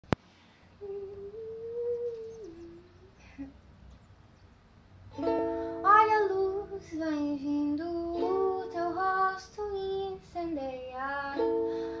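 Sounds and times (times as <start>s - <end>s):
woman humming a steady note: 0.8s - 3.5s.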